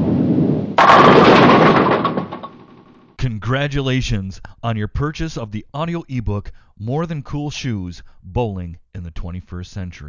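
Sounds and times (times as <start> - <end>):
bowling ball rolling: 0.8 - 3.0
bowling pins crashing: 0.8 - 3.1.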